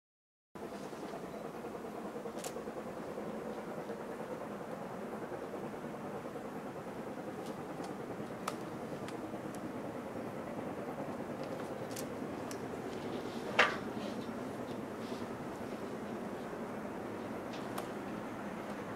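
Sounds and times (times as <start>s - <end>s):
distant steam locomotives rumbling: 0.6s - 18.9s.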